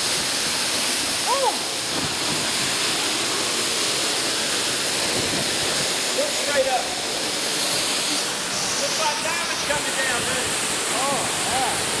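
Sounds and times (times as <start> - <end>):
waterfall pouring: 0.0 - 12.0.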